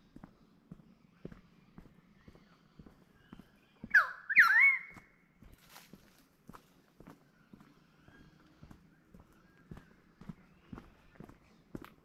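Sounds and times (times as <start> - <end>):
footsteps walking: 0.2 - 4.0, 4.9 - 12.0
bird squawk: 3.8 - 5.1.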